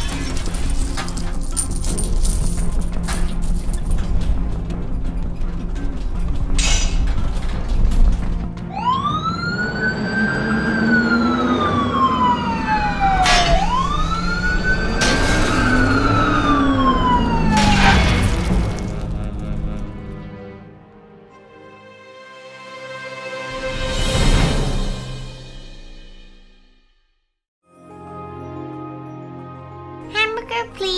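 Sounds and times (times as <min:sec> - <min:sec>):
background music: 0:00.0 - 0:26.2, 0:27.7 - 0:30.9
police siren wailing: 0:08.6 - 0:20.0
sharp crashes: 0:15.0 - 0:20.1.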